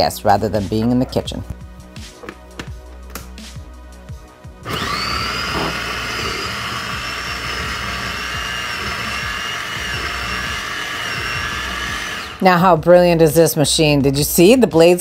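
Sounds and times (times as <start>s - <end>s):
food processor motor whining: 4.6s - 12.4s.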